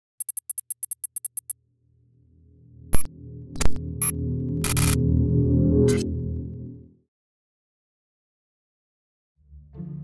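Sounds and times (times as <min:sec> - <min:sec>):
high-pitched electronic typing ticks: 0:00.2 - 0:01.6.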